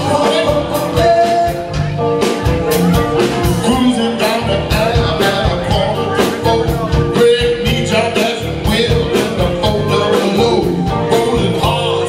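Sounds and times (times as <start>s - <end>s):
guitar: 0.0s - 12.0s
live band playing: 0.0s - 12.0s
steady drum beat: 0.0s - 12.0s.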